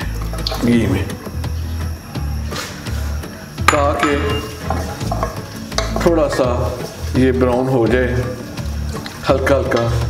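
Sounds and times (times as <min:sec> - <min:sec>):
background music with pulsing bass: 0:00.0 - 0:10.0
onions sizzling in hot fat: 0:00.0 - 0:10.0.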